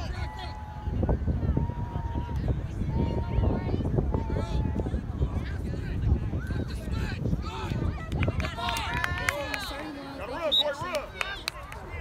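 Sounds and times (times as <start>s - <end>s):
wind rumble on microphone: 0.0s - 10.0s
voices calling and shouting: 0.0s - 12.0s.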